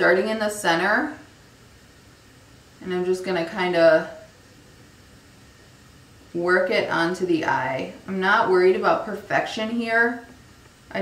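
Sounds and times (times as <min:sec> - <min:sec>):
woman's voice: 0:00.0 - 0:01.3, 0:02.8 - 0:04.3, 0:06.3 - 0:11.0
faint room tone hiss: 0:00.0 - 0:11.0.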